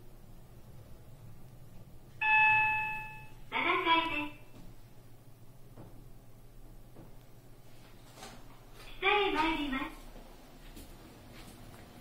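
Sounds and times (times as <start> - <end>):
elevator chime ding: 2.2 - 3.5
recorded voice announcement: 3.5 - 4.6, 8.8 - 10.1.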